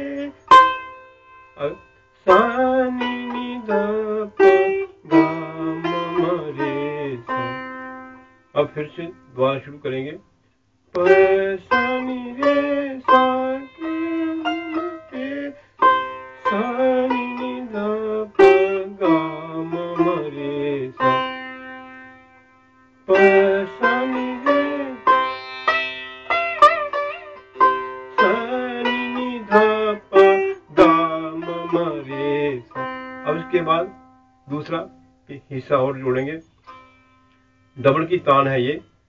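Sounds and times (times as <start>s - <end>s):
sitar playing: 0.0s - 10.1s, 11.0s - 39.0s.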